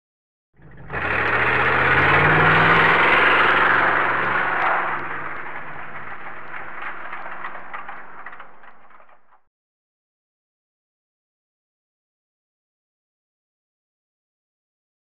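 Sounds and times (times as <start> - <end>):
car engine starting and running: 0.6 - 9.4.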